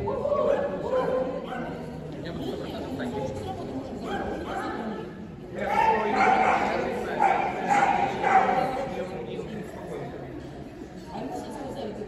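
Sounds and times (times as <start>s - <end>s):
dog barking: 6.2s - 8.7s.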